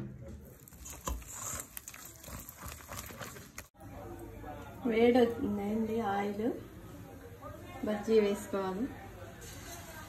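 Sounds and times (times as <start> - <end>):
hand mixing batter in bowl: 0.4 - 3.8.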